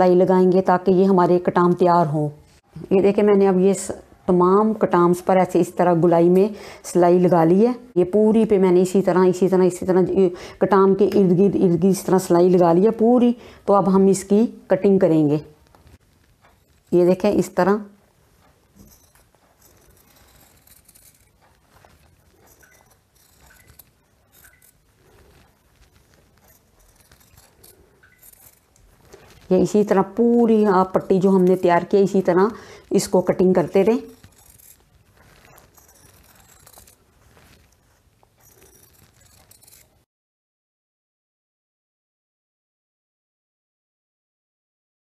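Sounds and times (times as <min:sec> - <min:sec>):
scissors snipping cloth: 0:18.4 - 0:40.1.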